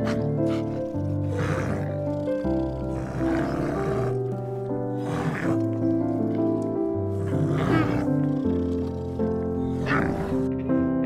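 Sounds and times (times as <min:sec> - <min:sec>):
bear growling roars: 0:00.0 - 0:10.7
calm background music: 0:00.0 - 0:11.0.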